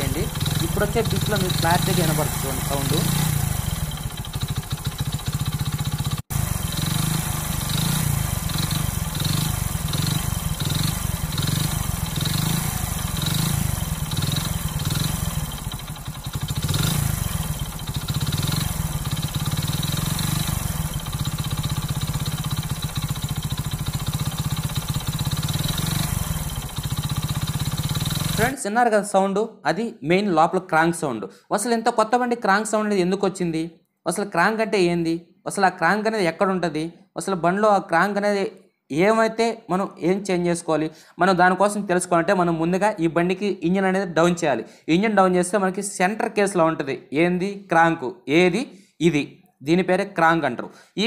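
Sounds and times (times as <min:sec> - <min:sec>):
engine crank noise: 0:00.0 - 0:28.6
motorcycle engine running: 0:00.0 - 0:28.6.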